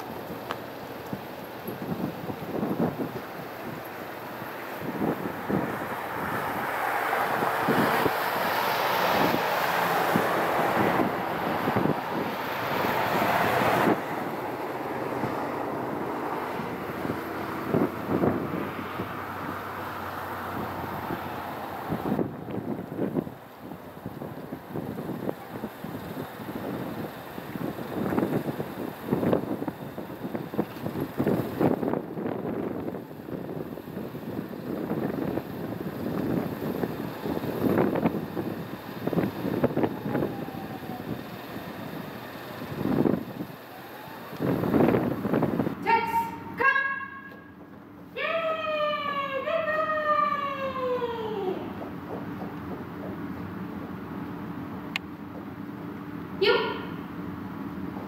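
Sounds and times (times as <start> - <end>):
wind buffeting microphone: 0.0 - 45.9
road traffic humming: 0.0 - 58.0.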